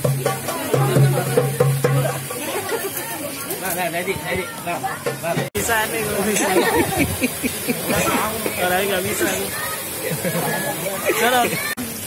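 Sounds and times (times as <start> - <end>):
people talking: 0.0 - 12.0
steady hiss: 0.0 - 12.0.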